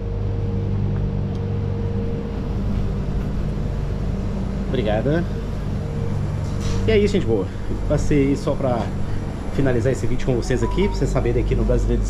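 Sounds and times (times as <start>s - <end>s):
low machine hum: 0.0s - 12.0s
faint higher tone: 10.5s - 11.6s.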